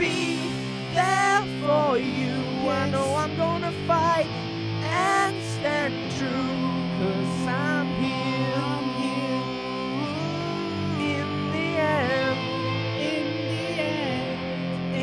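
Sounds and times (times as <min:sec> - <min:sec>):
rock song with guitar: 0:00.0 - 0:15.0.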